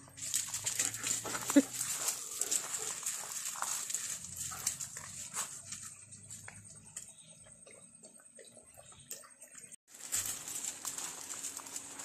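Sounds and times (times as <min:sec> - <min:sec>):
dog scuffing on gravel: 0:00.2 - 0:06.4, 0:09.9 - 0:12.0.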